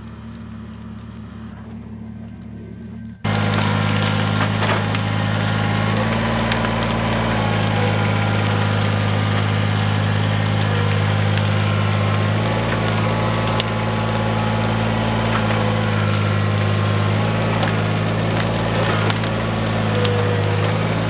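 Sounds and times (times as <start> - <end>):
brush cracking: 0.0 - 21.0
tractor diesel engine running: 0.0 - 21.0.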